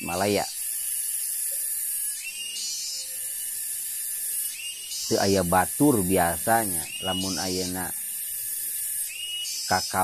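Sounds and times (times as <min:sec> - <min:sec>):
cicadas buzzing: 0:00.0 - 0:10.0
lower insect buzz: 0:00.0 - 0:10.0.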